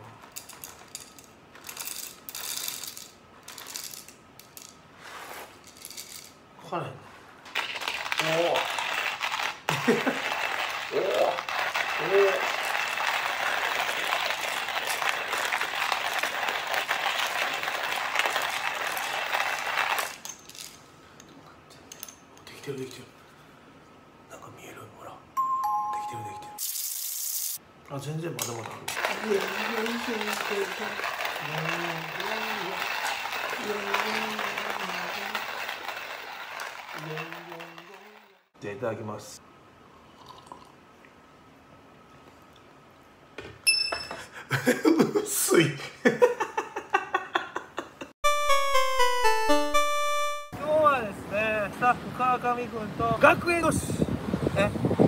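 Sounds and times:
hand-crank coffee mill grinding: 0.0 - 4.7, 7.5 - 20.7, 28.4 - 38.5.

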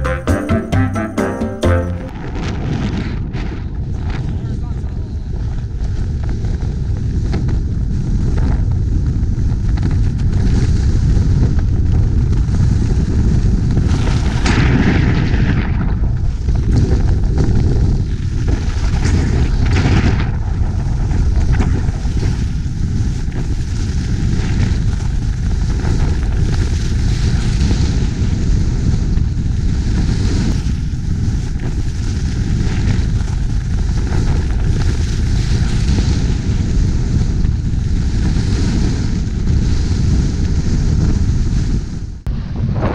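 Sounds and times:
wind buffeting microphone: 2.1 - 42.9.

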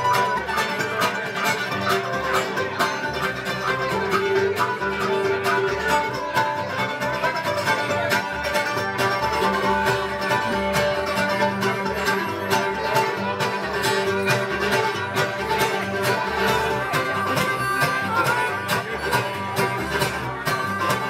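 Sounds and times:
fiddle holding notes: 0.0 - 21.0
picked banjo: 0.0 - 21.0
strummed acoustic guitar: 0.0 - 21.0
upright bass plucking: 0.0 - 21.0.

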